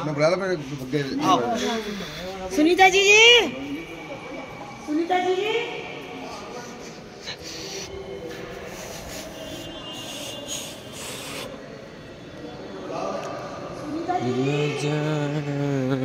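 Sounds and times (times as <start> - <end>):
faint indistinct voices: 0.0 - 16.0
room noise echoing in a hall: 0.0 - 16.0.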